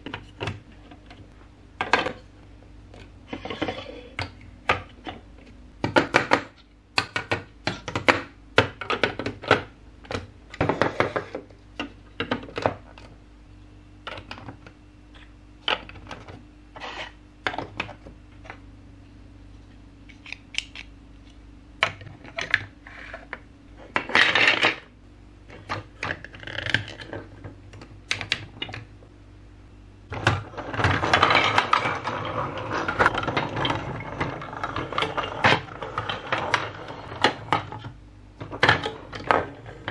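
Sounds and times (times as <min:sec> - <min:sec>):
plastic toys clattering on table: 0:23.9 - 0:24.9, 0:30.2 - 0:39.9
plastic blocks clacking: 0:30.2 - 0:39.9.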